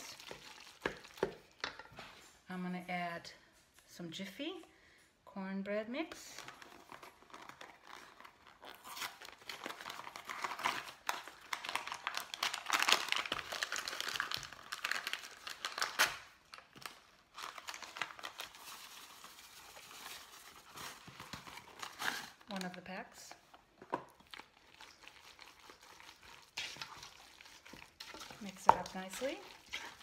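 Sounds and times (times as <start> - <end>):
paper packaging tearing and crinkling: 6.4 - 22.8.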